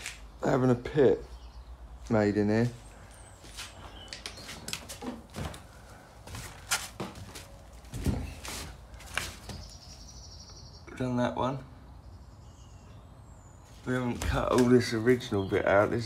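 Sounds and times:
footsteps on gritty floor: 2.0 - 9.8
light knocks and scuffs: 3.4 - 9.9.

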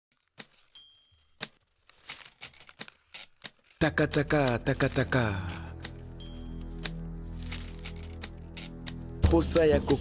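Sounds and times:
typewriter bell ding: 0.7 - 1.4.

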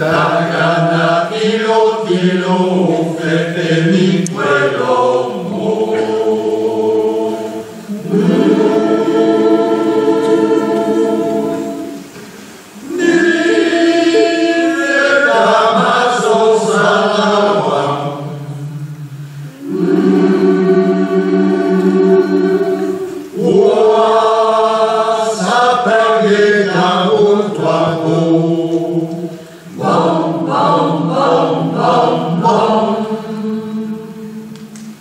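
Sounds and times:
large choir singing: 0.0 - 35.0.

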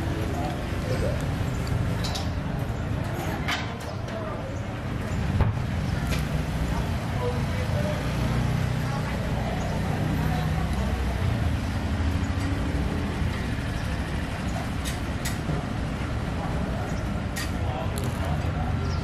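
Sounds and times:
street traffic: 0.0 - 19.0.

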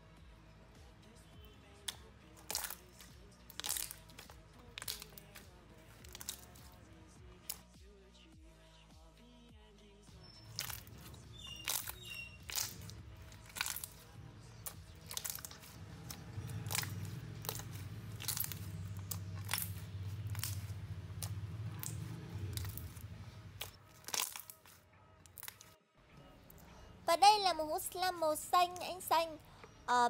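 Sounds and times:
slime being squeezed: 2.4 - 2.9, 3.5 - 5.4, 6.0 - 6.6, 10.3 - 14.0, 14.6 - 15.8, 16.4 - 25.7.

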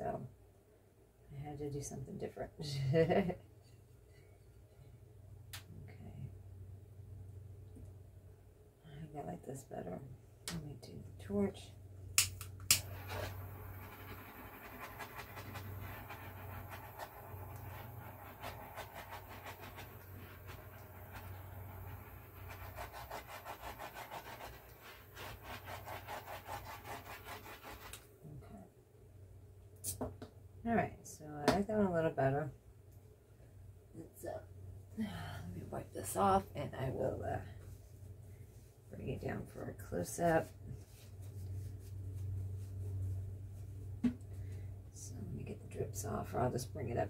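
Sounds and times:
steady low hum: 1.3 - 47.0.

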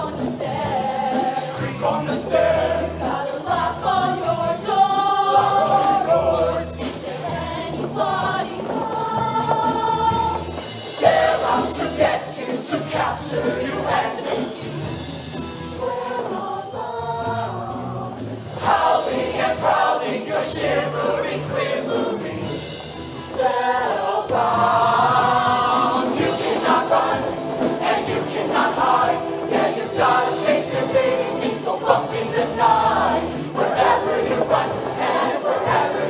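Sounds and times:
choir singing: 0.0 - 36.0
musical accompaniment: 0.0 - 36.0.

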